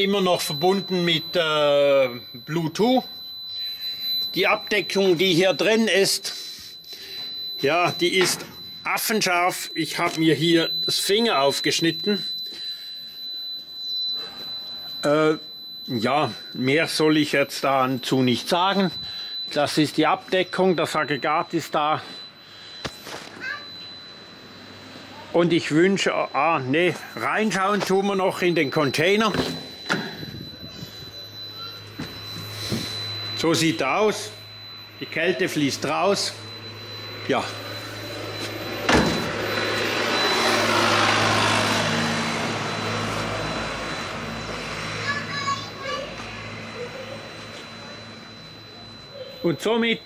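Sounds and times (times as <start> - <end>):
refrigeration unit humming: 0.0 - 50.0
vehicle passing by: 39.5 - 45.3.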